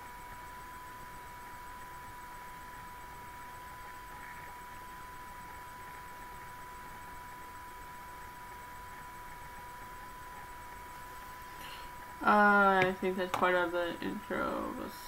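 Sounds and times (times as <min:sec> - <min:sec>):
high-pitched whine: 0:00.0 - 0:15.0.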